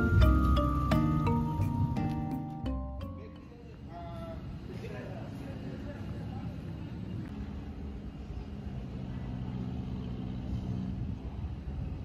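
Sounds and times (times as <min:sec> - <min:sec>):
motor engine rumbling: 0:00.0 - 0:12.0.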